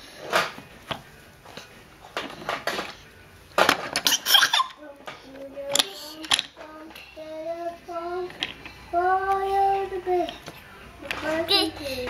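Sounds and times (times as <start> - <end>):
toddler vocalizing in sing-song tones: 11.1 - 12.0.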